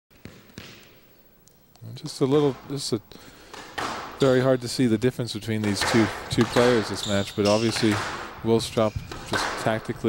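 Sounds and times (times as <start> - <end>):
squash ball knocks: 0.2 - 1.0, 3.4 - 4.4, 5.6 - 10.0.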